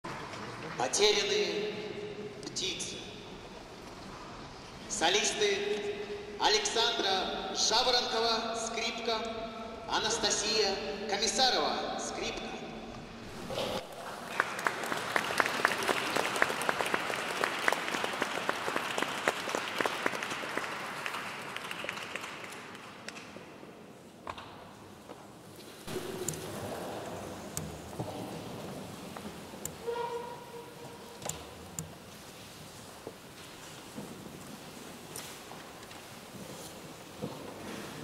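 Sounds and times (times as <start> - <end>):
audience applauding: 13.3 - 23.2.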